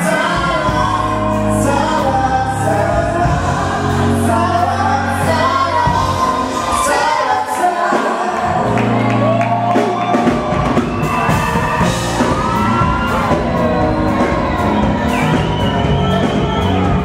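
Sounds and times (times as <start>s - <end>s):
man and woman singing duet: 0.0s - 9.2s
amplified backing music: 0.0s - 17.0s.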